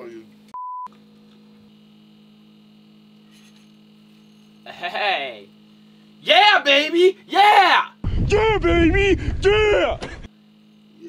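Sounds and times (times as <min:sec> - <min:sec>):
steady low hum: 0:00.0 - 0:11.0
censor bleep: 0:00.6 - 0:00.9.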